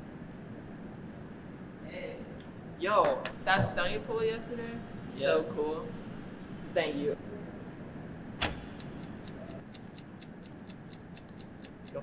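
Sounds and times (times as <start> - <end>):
fast even ticking: 8.5 - 12.0.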